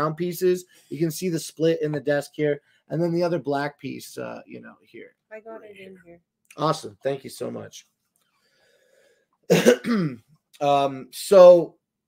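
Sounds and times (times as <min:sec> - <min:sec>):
man clearing throat: 0:09.5 - 0:10.3.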